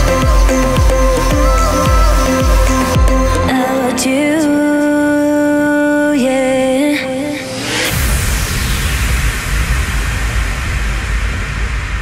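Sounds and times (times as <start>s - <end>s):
deep rumbling bass: 0.0s - 3.6s, 7.7s - 12.0s
synthesized white noise effect: 0.0s - 4.5s, 6.5s - 12.0s.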